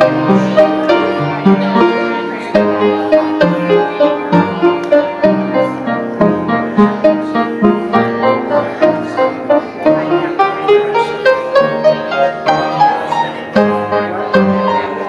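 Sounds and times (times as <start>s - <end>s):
piano piece: 0.0s - 15.0s.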